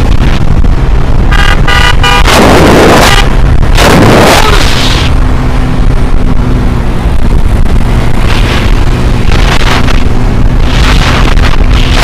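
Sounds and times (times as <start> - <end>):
loud rushes of noise: 0.0 - 12.0
ride rumbling: 0.0 - 12.0
vehicle horn beeping: 1.3 - 2.4.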